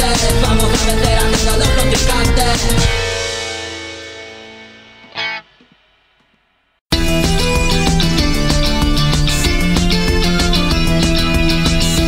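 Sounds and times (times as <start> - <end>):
punk song: 0.0 - 5.8, 6.9 - 12.0
distorted guitar chord ringing: 1.8 - 7.2
short loud stab: 2.7 - 4.9.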